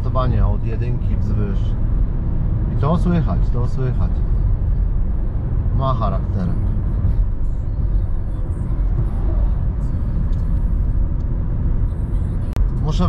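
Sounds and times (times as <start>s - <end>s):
car engine running under load: 0.0s - 13.0s
road and tyre noise: 0.0s - 13.0s.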